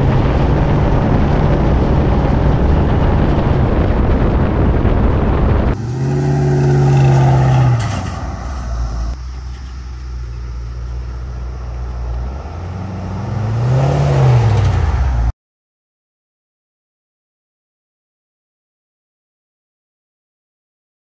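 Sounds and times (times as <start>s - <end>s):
pickup truck driving past: 5.8s - 15.3s.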